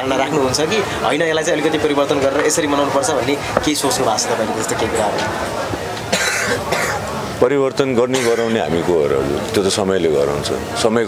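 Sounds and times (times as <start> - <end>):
faint voices: 0.0 - 11.0
man coughing: 6.1 - 7.1, 8.2 - 8.6.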